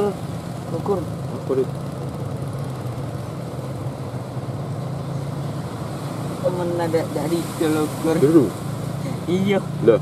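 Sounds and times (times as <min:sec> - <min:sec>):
boat engine droning: 0:00.0 - 0:10.0
constant hiss: 0:00.0 - 0:10.0.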